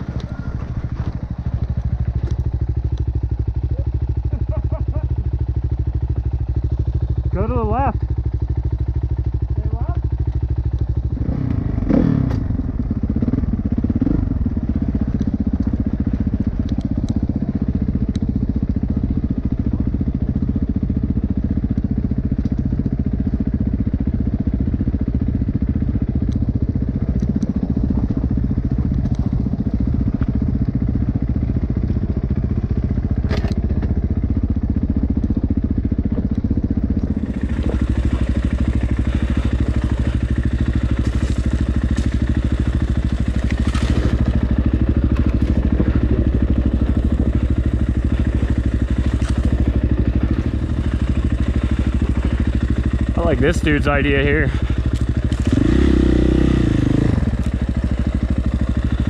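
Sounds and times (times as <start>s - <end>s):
dirt bike engine running: 0.0s - 59.0s.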